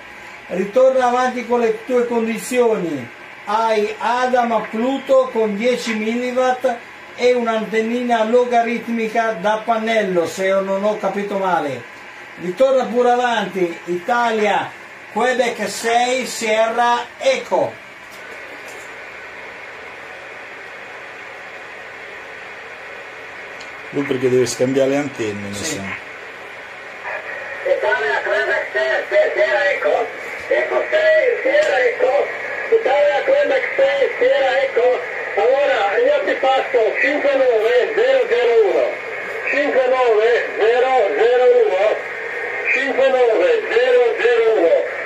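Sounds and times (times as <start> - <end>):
radio static hiss: 0.0 - 45.0
man speaking: 0.5 - 17.8, 23.9 - 26.0, 27.6 - 42.0, 42.6 - 44.9.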